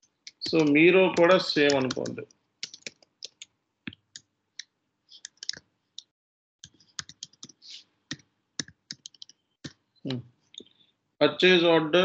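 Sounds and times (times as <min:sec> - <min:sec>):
computer keyboard typing: 0:00.3 - 0:04.2, 0:05.2 - 0:05.6, 0:06.6 - 0:09.8.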